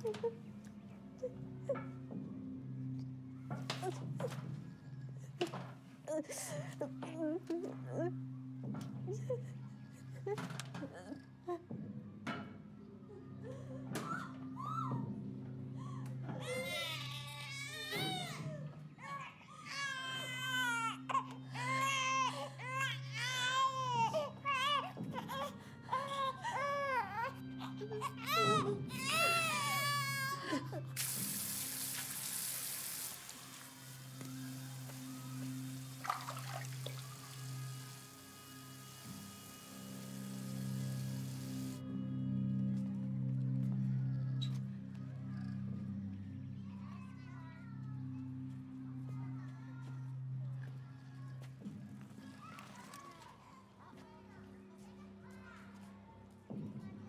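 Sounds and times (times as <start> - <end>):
woman sobbing: 6.1 - 8.3, 9.0 - 11.8, 13.1 - 17.0, 25.1 - 31.0
baby crying: 16.3 - 31.0.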